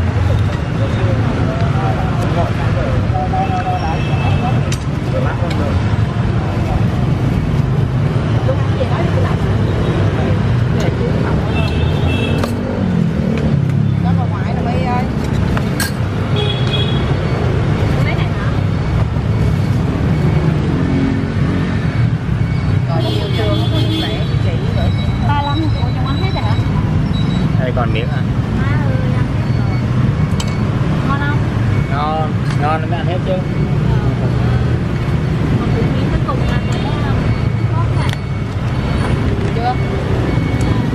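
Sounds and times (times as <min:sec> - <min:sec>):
people talking: 0:00.0 - 0:07.1, 0:08.4 - 0:12.2, 0:14.0 - 0:15.2, 0:18.0 - 0:18.8, 0:22.9 - 0:27.0, 0:27.6 - 0:30.0, 0:35.5 - 0:40.9
street traffic rumble: 0:00.0 - 0:40.9.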